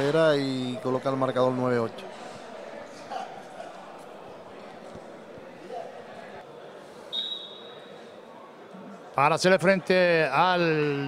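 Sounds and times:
murmur of voices: 0.0 - 11.0
referee's whistle blast: 7.1 - 7.9.

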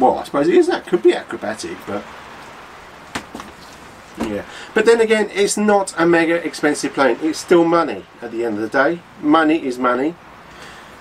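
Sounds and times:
steady rain: 0.0 - 11.0.

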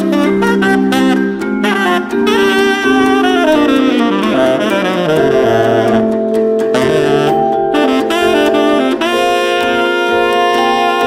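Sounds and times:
small jazz band: 0.0 - 11.0
tenor saxophone: 0.0 - 11.0.

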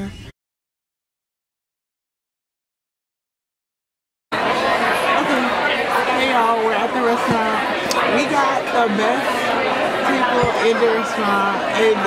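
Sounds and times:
restaurant chatter: 4.3 - 12.0.

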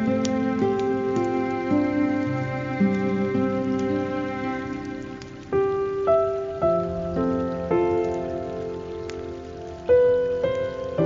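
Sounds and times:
slow plucked guitar music: 0.0 - 9.4
running water hiss: 0.0 - 11.0.

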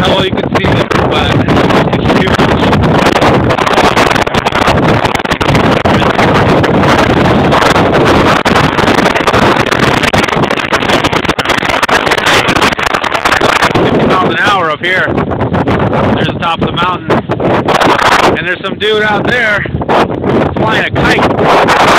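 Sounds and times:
strong wind buffeting microphone: 0.0 - 21.9.

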